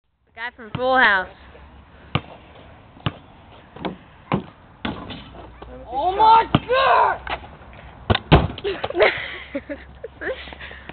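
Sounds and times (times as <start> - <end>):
basketball bouncing on asphalt: 0.5 - 1.3, 2.0 - 5.6, 8.0 - 9.0.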